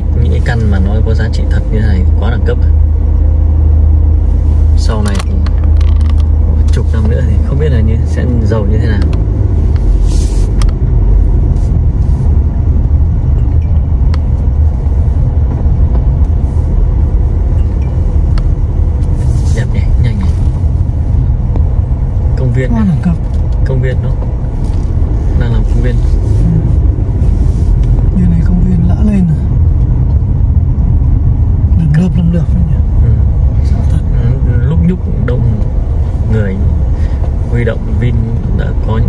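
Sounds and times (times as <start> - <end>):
car driving on dirt road: 0.0 - 39.0.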